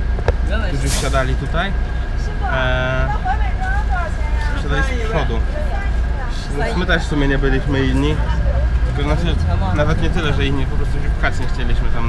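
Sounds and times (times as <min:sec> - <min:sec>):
bus engine low rumble: 0:00.0 - 0:12.0
man talking: 0:08.9 - 0:12.0.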